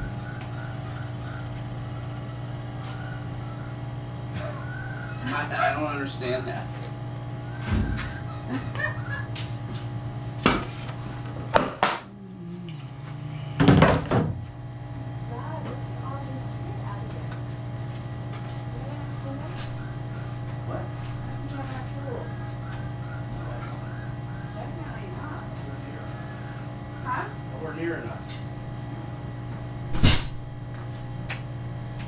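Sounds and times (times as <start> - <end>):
low machine hum: 0.0 - 32.0.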